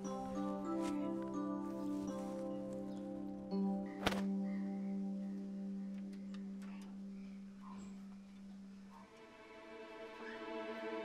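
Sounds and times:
soft drama background music: 0:00.0 - 0:11.0.

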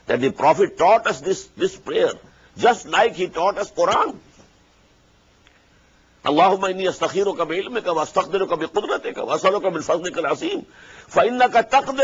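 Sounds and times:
old recording hiss: 0:00.0 - 0:12.0
man's voice: 0:00.1 - 0:04.2, 0:06.3 - 0:12.0.

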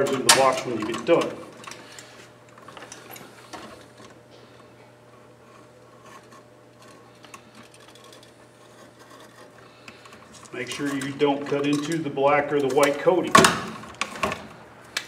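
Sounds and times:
steady low hum: 0:00.0 - 0:15.0
hand tool scraping cable sheathing: 0:05.4 - 0:13.1.

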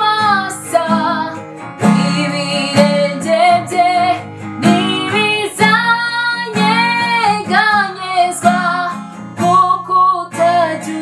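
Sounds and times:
guitar accompaniment: 0:00.0 - 0:11.0
woman singing: 0:00.0 - 0:11.0.

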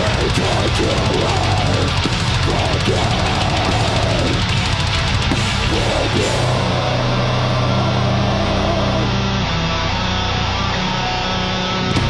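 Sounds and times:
distorted electric guitars and bass chord: 0:00.0 - 0:12.0.

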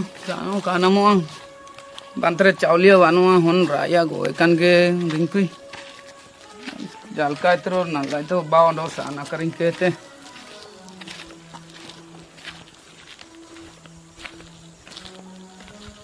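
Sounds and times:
slow low background music: 0:00.0 - 0:16.0.

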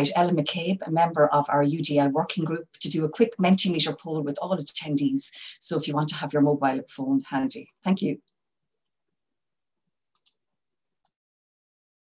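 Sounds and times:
faint clicks: 0:10.1 - 0:10.4.

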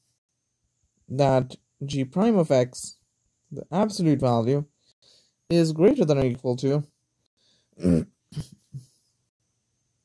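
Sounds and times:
man coughing: 0:07.8 - 0:08.8.

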